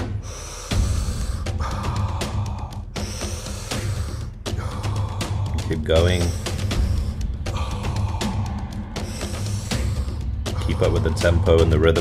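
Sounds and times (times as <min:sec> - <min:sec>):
background music with deep pulse: 0:00.0 - 0:12.0
forceful mouth breathing: 0:00.0 - 0:12.0.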